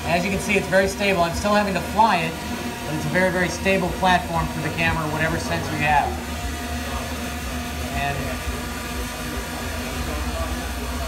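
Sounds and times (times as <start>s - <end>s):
drone rotors humming: 0.0s - 11.0s.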